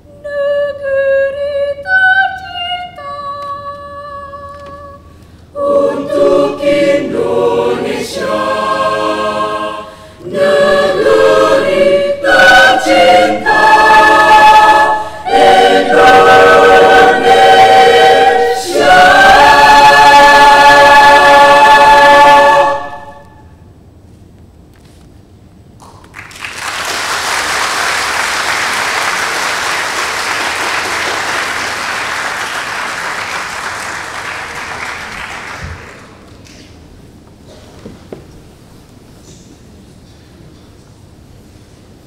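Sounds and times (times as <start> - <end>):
choir singing a cappella: 0.1 - 23.5.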